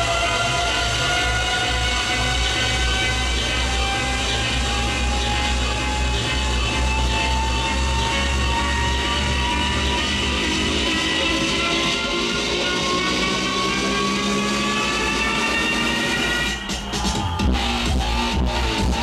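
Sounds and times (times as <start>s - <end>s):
pulsing deep bass: 0.0s - 19.0s
rising synth build-up: 0.0s - 19.0s.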